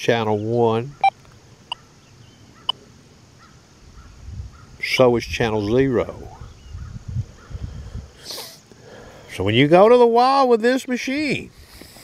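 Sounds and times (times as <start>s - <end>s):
low rumble of wind: 0.0s - 8.3s
person sniffing: 7.6s - 9.2s, 11.6s - 12.0s.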